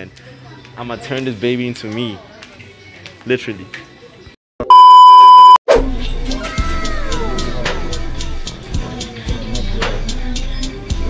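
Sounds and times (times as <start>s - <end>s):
loud electronic bleep: 4.6s - 5.6s
background music with a beat: 5.7s - 11.0s.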